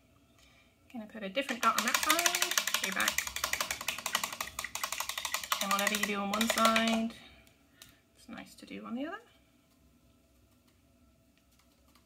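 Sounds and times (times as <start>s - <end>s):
fast light clicks: 1.5s - 7.1s.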